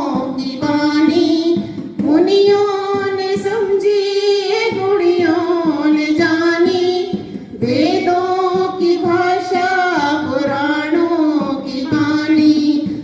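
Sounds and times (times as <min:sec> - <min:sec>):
women singing into microphones: 0:00.0 - 0:13.0.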